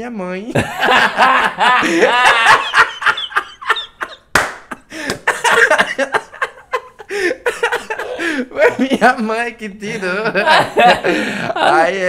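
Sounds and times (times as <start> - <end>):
man laughing hard: 0.6 - 9.1, 9.8 - 12.0.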